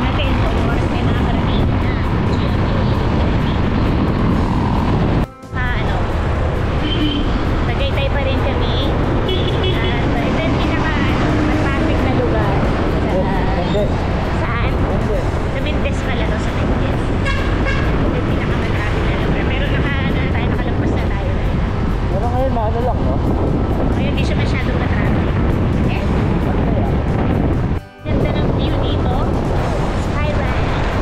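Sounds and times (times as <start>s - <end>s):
motorcycle road noise: 0.0s - 31.0s
wind buffeting microphone: 0.0s - 31.0s.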